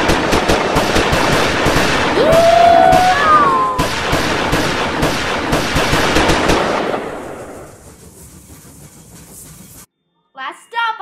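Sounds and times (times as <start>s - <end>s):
gunshots volley: 0.0s - 2.5s, 3.8s - 7.4s.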